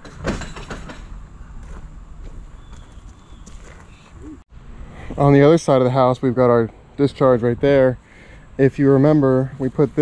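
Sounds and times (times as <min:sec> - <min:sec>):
soft footsteps on grass: 0:01.6 - 0:04.1.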